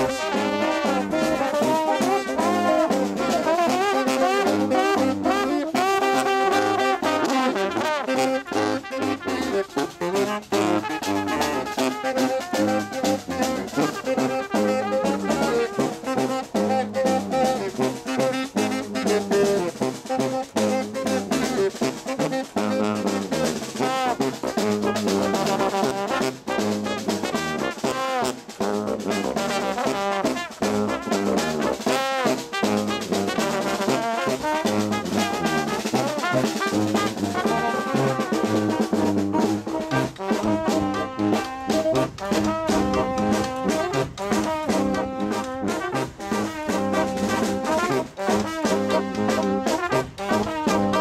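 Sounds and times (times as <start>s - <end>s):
marching brass band playing: 0.0s - 51.0s
snare drum: 0.0s - 51.0s.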